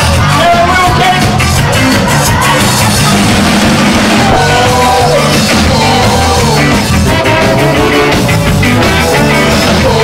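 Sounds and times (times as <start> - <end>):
bass line: 0.0 - 10.0
drum kit beat: 0.0 - 10.0
live band playing ska: 0.0 - 10.0.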